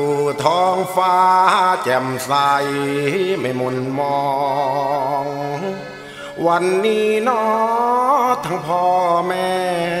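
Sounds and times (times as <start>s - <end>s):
man singing chanted style: 0.0s - 10.0s.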